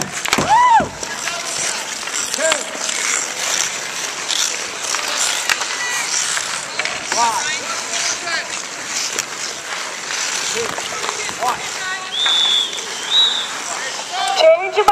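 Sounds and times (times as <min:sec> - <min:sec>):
hockey sticks clacking: 0:00.0 - 0:14.9
skates scraping ice: 0:00.0 - 0:14.9
people shouting: 0:00.3 - 0:02.9.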